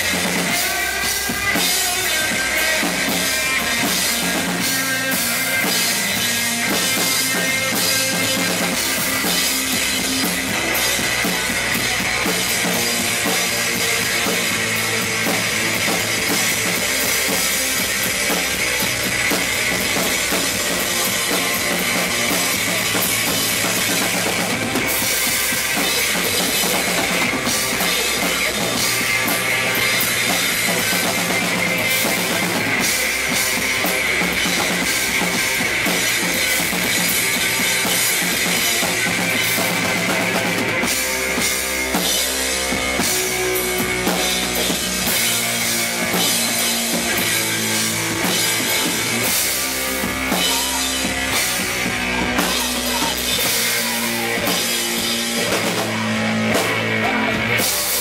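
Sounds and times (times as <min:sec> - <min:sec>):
bass guitar: 0:00.0 - 0:58.0
drum kit: 0:00.0 - 0:58.0
electric guitar: 0:00.0 - 0:58.0.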